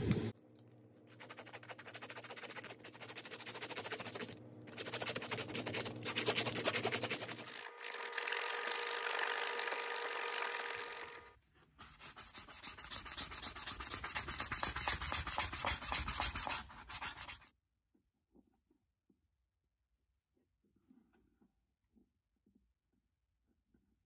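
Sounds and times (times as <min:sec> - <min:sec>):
sandpaper rubbing on wood: 0:01.1 - 0:11.1, 0:11.8 - 0:17.5.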